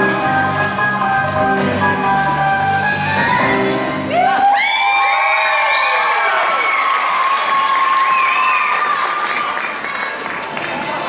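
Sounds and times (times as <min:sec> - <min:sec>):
audience applauding and cheering: 0:04.0 - 0:11.0
high-pitched shouts and whoops: 0:04.1 - 0:09.2.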